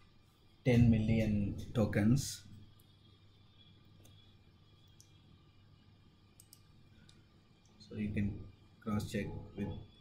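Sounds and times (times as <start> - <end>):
computer mouse clicks: 4.0 - 4.2, 6.4 - 7.8.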